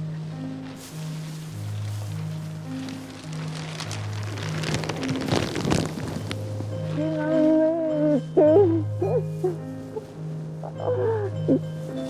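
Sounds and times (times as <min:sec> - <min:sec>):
soft film music: 0:00.0 - 0:12.0
plastic sheet crinkling: 0:00.4 - 0:08.0.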